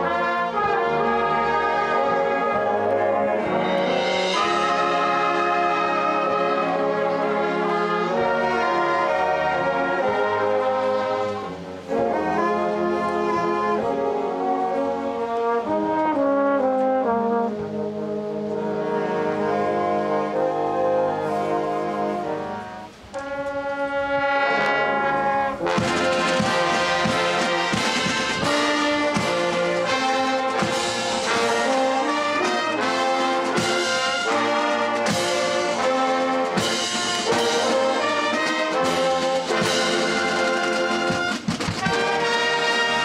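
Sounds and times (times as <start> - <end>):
brass band playing held chords: 0.0 - 43.0
drum stroke: 25.7 - 31.6.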